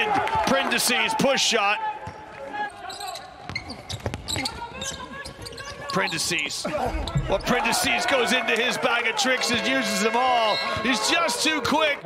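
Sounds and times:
players shouting: 6.7s - 12.0s.

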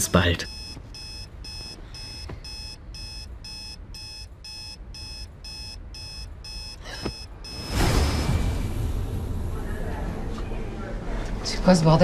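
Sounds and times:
electronic alarm beeping: 0.4s - 8.4s.

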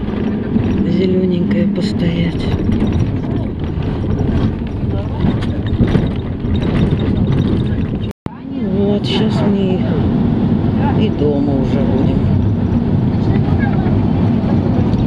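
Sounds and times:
indistinct voices: 0.0s - 12.4s
bus engine and road noise: 0.0s - 15.0s.

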